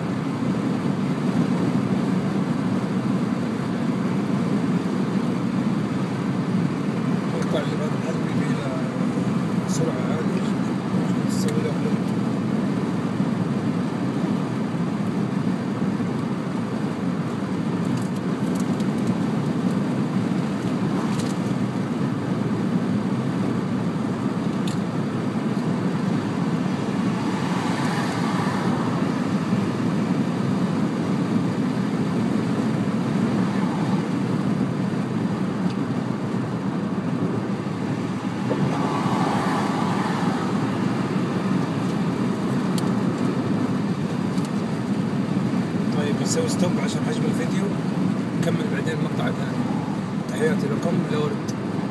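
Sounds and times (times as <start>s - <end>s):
car cabin road noise: 0.0s - 51.9s.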